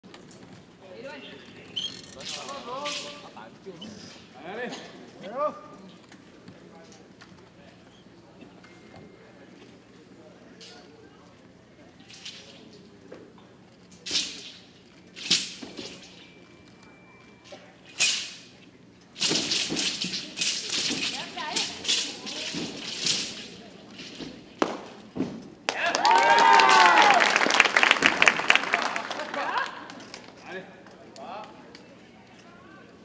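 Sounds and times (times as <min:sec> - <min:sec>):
sword rattling and swishing: 0:14.0 - 0:14.6, 0:17.9 - 0:18.5, 0:19.2 - 0:24.2
sword blade cracking: 0:18.0 - 0:18.5
spectators cheering: 0:25.7 - 0:29.9.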